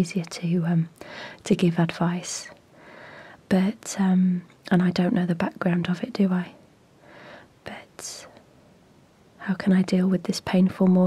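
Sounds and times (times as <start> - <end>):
woman inhaling: 1.0 - 1.4, 2.7 - 3.5, 7.0 - 7.5.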